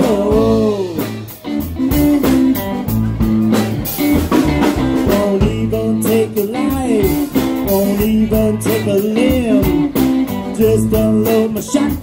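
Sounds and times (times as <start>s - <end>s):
bass guitar line: 0.0s - 12.0s
electric guitar: 0.0s - 12.0s.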